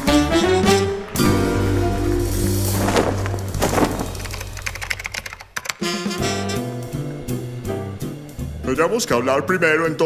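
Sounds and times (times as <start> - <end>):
music: 0.0 - 10.0
keyboard typing clicks: 4.1 - 5.8.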